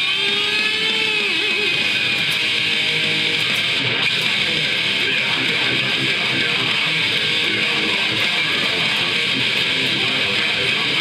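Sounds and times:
amp distortion hiss: 0:00.0 - 0:11.0
distorted electric guitar note: 0:00.0 - 0:11.0.

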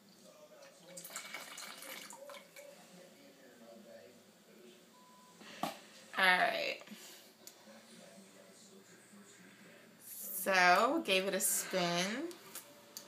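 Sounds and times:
liquid trickling into tub: 0:00.8 - 0:02.7.

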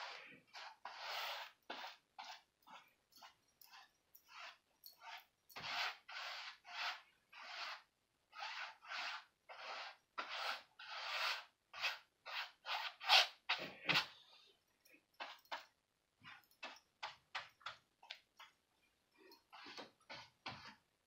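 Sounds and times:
paintbrush scratching on canvas: 0:00.0 - 0:14.4, 0:15.2 - 0:17.8, 0:19.4 - 0:20.8.

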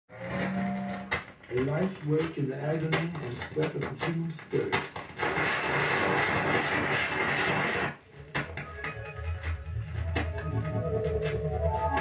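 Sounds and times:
vinyl record surface noise: 0:00.1 - 0:12.0.

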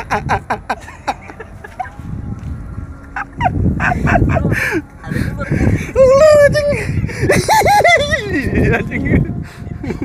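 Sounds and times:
man laughing hard: 0:00.0 - 0:01.9, 0:03.1 - 0:04.8, 0:06.0 - 0:10.0
low rumble: 0:00.0 - 0:10.0.

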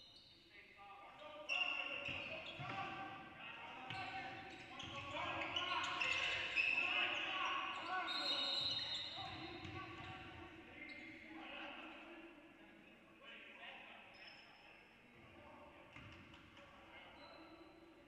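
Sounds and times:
sneaker squeaks: 0:01.2 - 0:11.2, 0:17.1 - 0:17.8.

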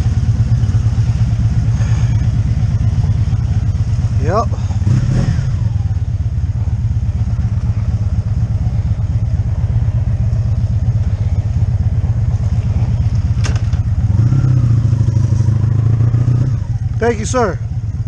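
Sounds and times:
motorcycle engine running at low revs: 0:00.0 - 0:18.0.

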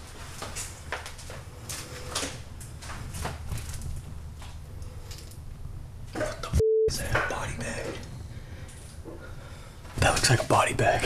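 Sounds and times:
censor beep: 0:06.6 - 0:07.0.

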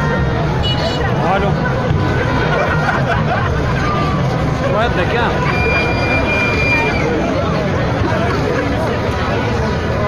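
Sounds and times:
crowd voices calling: 0:00.0 - 0:10.0.

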